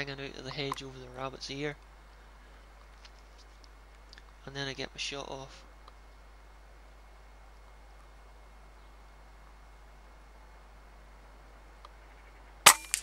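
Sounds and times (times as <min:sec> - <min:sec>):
faint background hiss: 0:00.0 - 0:13.0
air rifle shot: 0:12.7 - 0:13.0.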